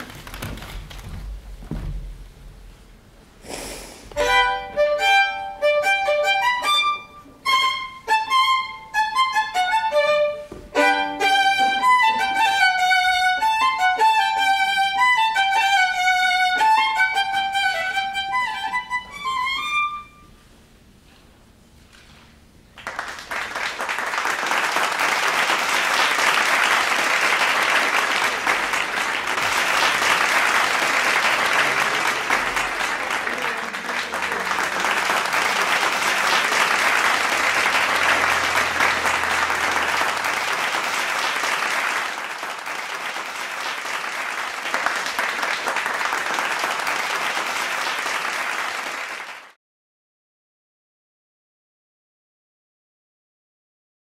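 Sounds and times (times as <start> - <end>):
violin quick run of notes: 4.2 - 15.2
audience applause: 22.8 - 49.6.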